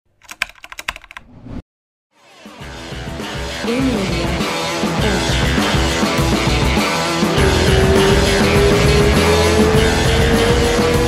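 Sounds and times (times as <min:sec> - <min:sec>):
rapid keyboard typing clicks: 0:00.1 - 0:01.2.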